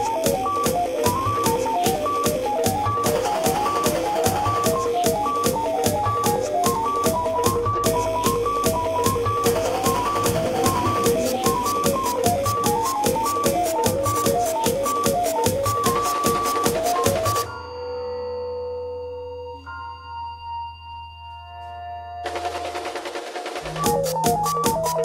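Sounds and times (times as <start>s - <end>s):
low drone: 0.0s - 13.9s
dense noisy layer: 0.0s - 17.5s
held tones: 0.0s - 18.2s.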